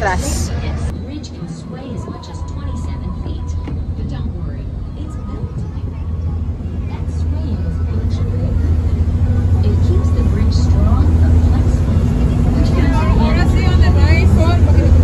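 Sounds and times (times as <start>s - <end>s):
boat engine droning: 0.0s - 15.0s
people talking: 0.0s - 15.0s.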